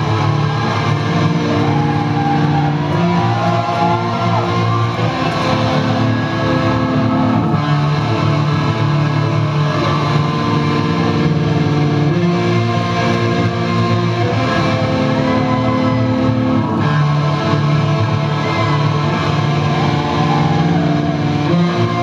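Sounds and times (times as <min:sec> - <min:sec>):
metal band playing live: 0:00.0 - 0:22.0.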